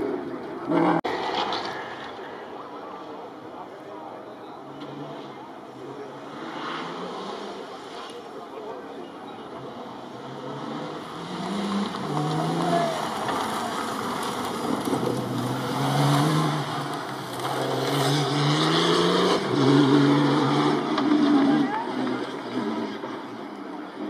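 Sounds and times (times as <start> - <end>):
buggy engines revving: 0.0 - 24.0.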